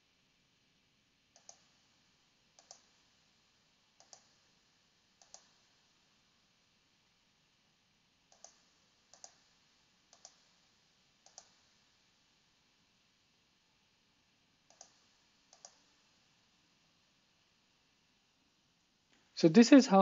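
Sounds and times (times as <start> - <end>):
quiet hiss: 0.0 - 20.0
computer mouse clicks: 1.3 - 1.8, 2.6 - 3.0, 4.0 - 4.4, 5.2 - 5.7, 8.3 - 9.5, 10.1 - 10.6, 11.2 - 11.8, 14.7 - 16.0.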